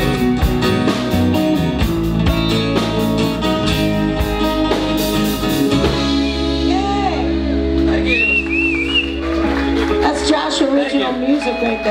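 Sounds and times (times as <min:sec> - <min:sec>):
person whistling: 0:08.1 - 0:09.2.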